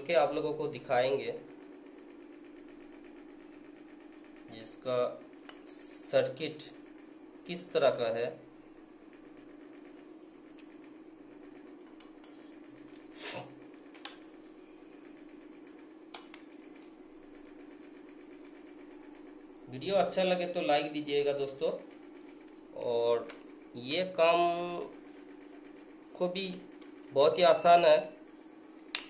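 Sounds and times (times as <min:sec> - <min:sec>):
faint steady hum: 0:00.0 - 0:29.0.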